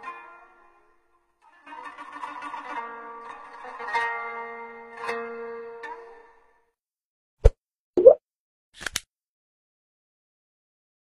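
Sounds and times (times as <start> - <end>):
pitched plop: 7.4 - 8.2.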